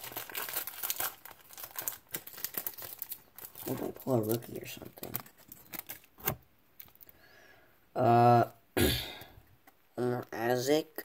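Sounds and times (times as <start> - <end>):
cards and wrapper rustling: 0.0 - 7.2.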